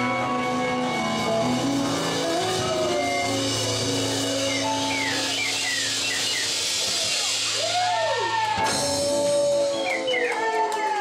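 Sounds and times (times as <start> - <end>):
electric guitar sliding notes: 0.0 - 10.6.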